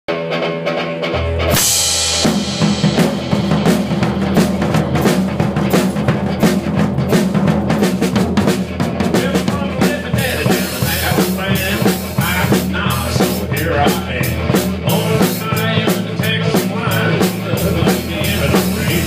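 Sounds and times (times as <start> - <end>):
live band music: 0.1 - 19.0
cymbal crash: 1.5 - 7.9.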